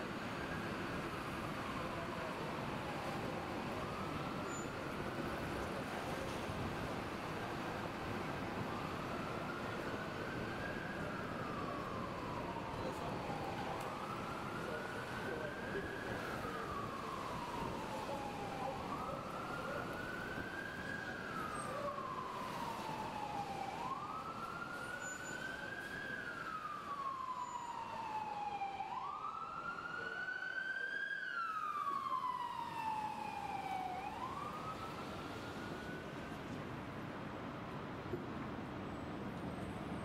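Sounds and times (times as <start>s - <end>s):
emergency siren wailing: 0.0s - 37.7s
city traffic noise: 0.0s - 40.0s.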